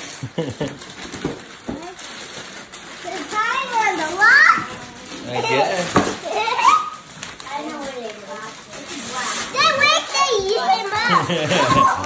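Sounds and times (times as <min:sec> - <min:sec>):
children squealing and calling out: 0:03.4 - 0:07.1, 0:09.4 - 0:12.0.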